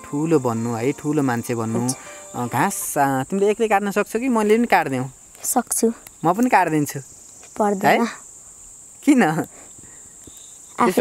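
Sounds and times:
person speaking: 0.0 - 3.4, 10.8 - 11.0
insects trilling: 0.0 - 11.0.

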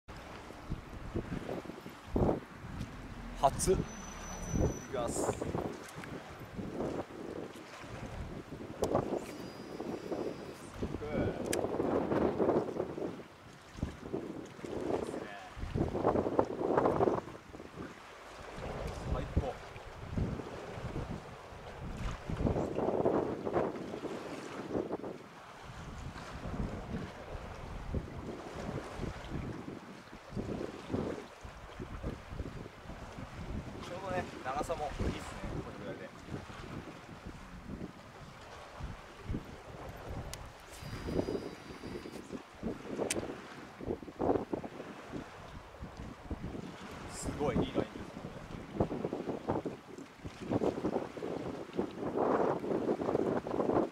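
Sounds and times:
wind buffeting microphone: 0.1 - 53.9
sharp click: 11.4 - 11.7, 43.0 - 43.3.

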